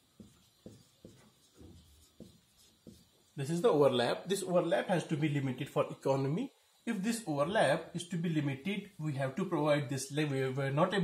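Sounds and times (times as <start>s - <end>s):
marker rubbing on whiteboard: 0.0s - 3.6s.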